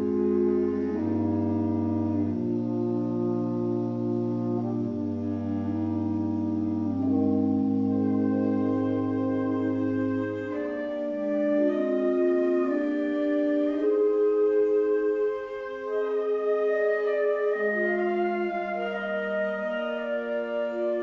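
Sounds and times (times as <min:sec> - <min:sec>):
wind ensemble playing slow chorale: 0:00.0 - 0:21.0.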